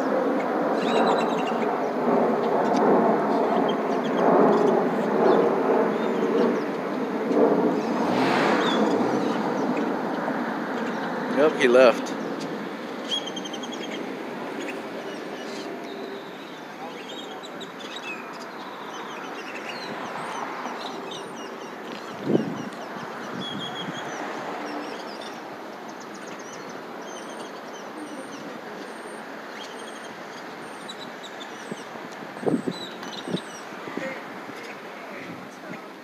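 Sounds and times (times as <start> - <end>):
small birds chirping: 0.0 - 36.0
traffic hum: 0.0 - 36.0.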